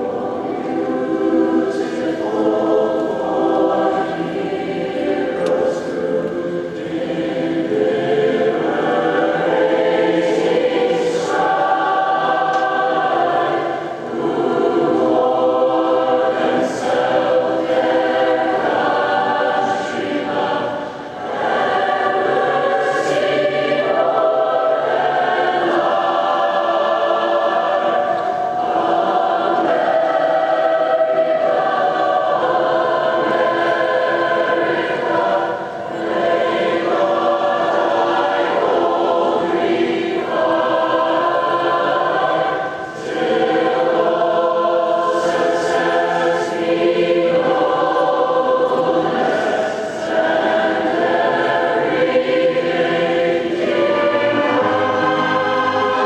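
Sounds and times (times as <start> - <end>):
choir singing: 0.0 - 56.0.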